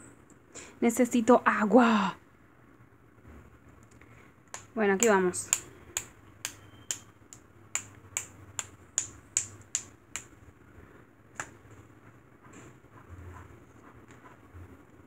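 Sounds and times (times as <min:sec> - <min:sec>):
paintbrush tapping clicks: 0:04.5 - 0:10.4.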